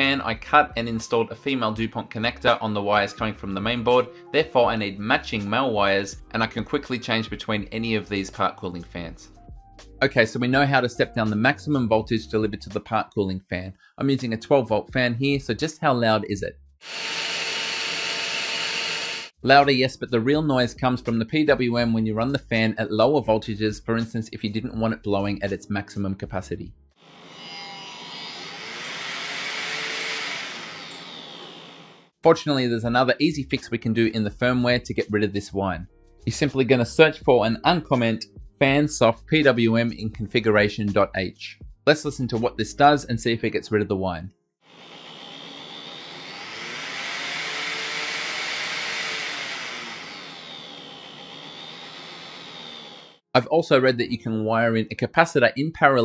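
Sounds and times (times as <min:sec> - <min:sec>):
small blower fan whirring: 0:27.1 - 0:32.1, 0:44.8 - 0:53.2.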